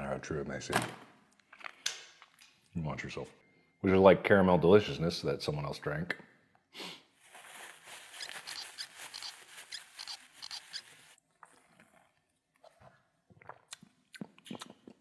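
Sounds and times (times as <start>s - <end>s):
mouth clicks and smacks: 12.7s - 15.0s.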